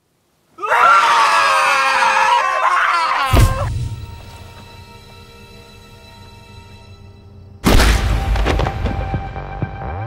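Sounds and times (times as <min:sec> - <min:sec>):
people screaming: 0:00.6 - 0:03.7.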